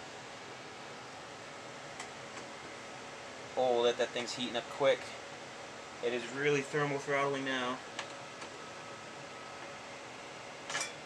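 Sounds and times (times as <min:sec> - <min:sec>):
computer fans whining: 0:00.0 - 0:11.0.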